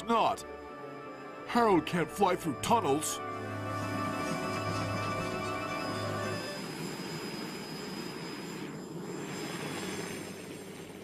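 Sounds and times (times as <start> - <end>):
helicopter flying overhead: 0.0 - 11.0.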